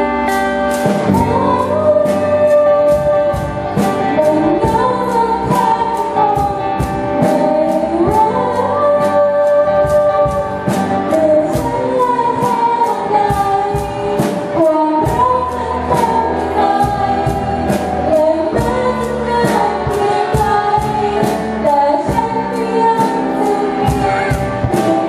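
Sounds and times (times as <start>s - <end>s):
bass guitar: 0.0s - 25.0s
drum kit beat: 0.0s - 25.0s
electric guitar: 0.0s - 25.0s
girl singing into microphone: 0.9s - 25.0s.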